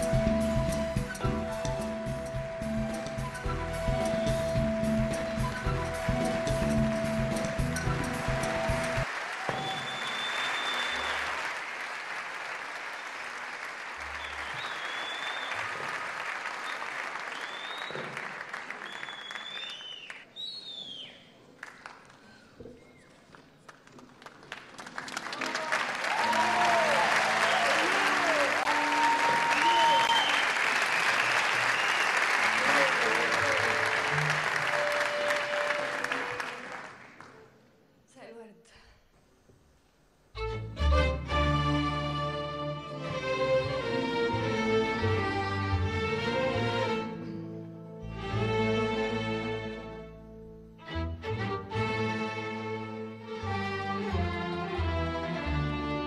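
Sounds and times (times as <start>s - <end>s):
audience applauding and cheering: 0.0s - 20.3s, 21.3s - 37.6s
whistles: 3.0s - 6.6s, 9.5s - 11.3s, 14.0s - 15.9s, 16.6s - 21.4s, 29.5s - 32.4s.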